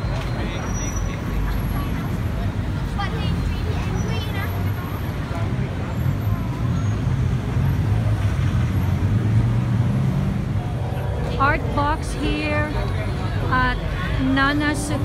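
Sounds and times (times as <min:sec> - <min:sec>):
road traffic rumble: 0:00.0 - 0:15.0
vehicle engine hum: 0:00.0 - 0:15.0
people's voices: 0:10.5 - 0:15.0.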